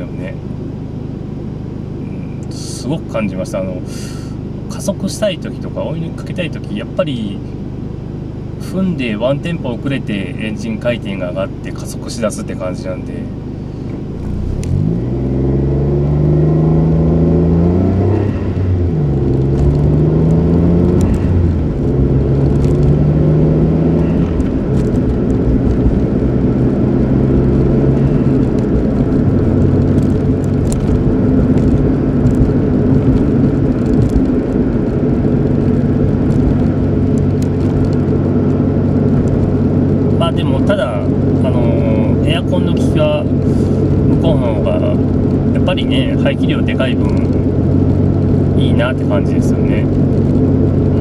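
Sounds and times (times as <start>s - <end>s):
road noise: 0.0s - 51.0s
car engine accelerating through gears: 11.2s - 51.0s.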